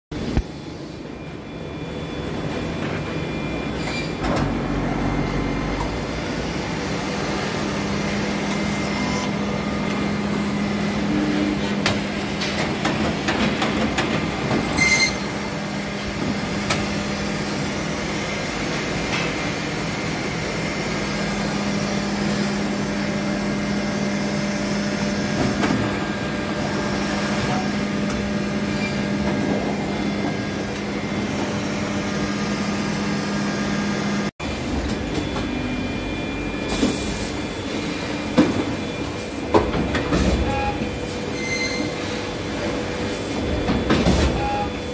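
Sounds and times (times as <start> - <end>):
binding machine droning: 0.2 - 44.9.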